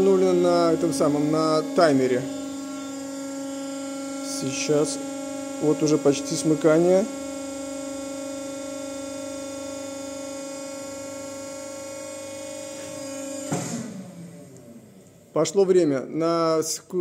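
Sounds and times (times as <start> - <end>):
hydraulic pump motor humming: 0.0 - 15.6.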